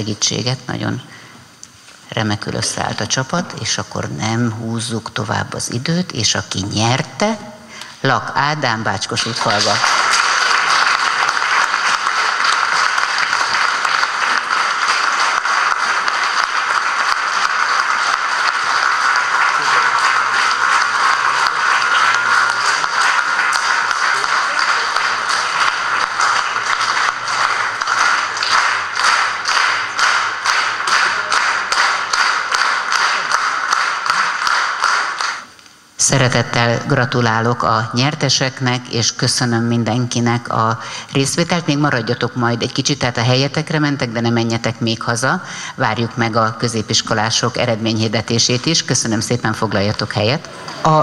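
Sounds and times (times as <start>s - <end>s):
audience applauding: 9.2s - 35.5s
rhythmic unison clapping: 9.2s - 35.6s.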